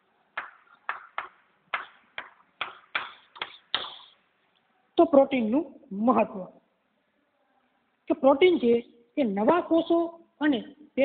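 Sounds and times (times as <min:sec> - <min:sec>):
chalk tapping and scraping: 0:00.4 - 0:04.2.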